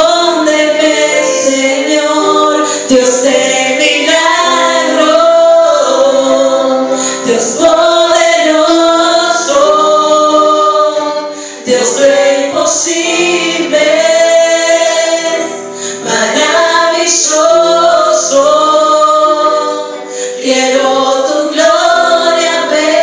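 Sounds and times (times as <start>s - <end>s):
women singing worship song: 0.0s - 23.0s.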